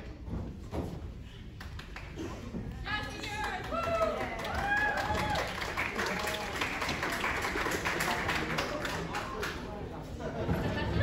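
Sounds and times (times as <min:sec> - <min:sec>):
audience applauding: 0:03.4 - 0:09.7.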